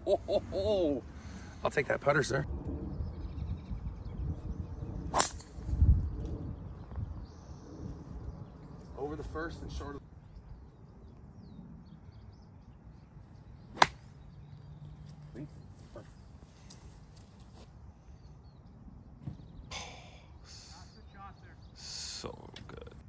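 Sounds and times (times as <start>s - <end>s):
birds chirping: 0.0s - 23.0s
golf club striking ball: 13.8s - 14.1s.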